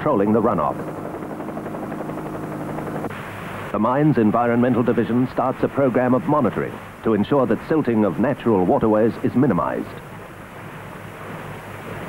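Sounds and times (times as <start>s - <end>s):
aircraft engine drone: 0.0s - 8.2s.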